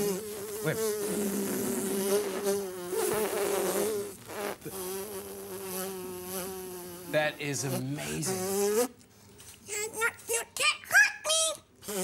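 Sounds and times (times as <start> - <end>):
person imitating buzzing fly: 0.0 - 8.9.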